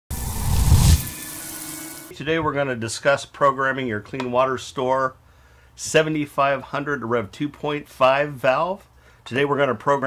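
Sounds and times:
whoosh with deep rumble: 0.1 - 1.1.

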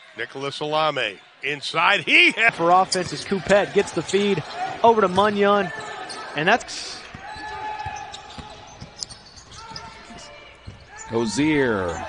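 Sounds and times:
gym background noise: 1.4 - 12.0.

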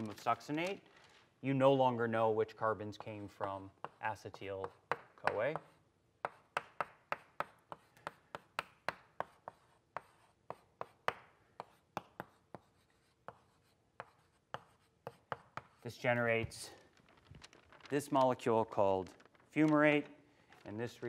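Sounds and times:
chalk tapping and scraping: 2.6 - 16.8.

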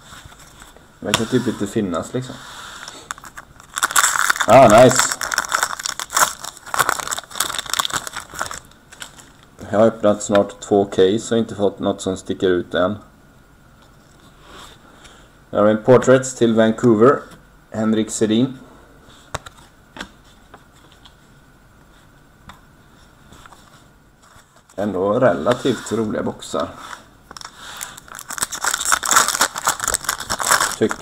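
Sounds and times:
foil wrapper crinkling and tearing: 2.9 - 9.5, 27.3 - 31.0.

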